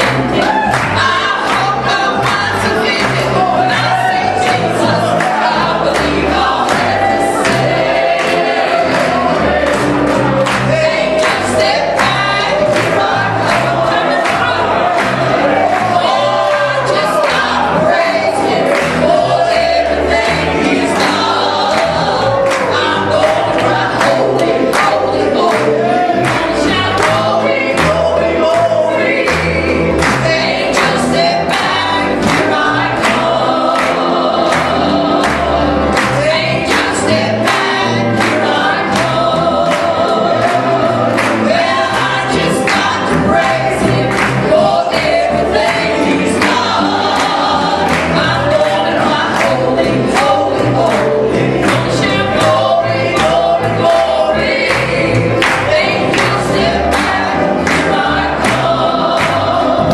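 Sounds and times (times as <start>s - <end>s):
piano accompaniment: 0.0s - 59.9s
trio singing in harmony: 0.0s - 59.9s.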